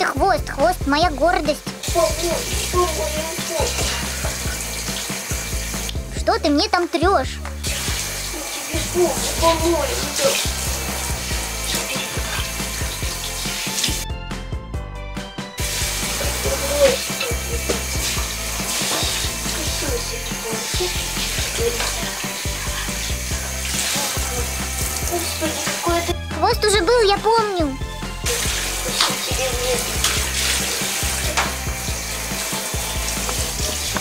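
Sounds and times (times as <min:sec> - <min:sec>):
background music: 0:00.0 - 0:34.0
shower water spraying: 0:01.0 - 0:14.1, 0:15.5 - 0:26.2, 0:28.0 - 0:34.0.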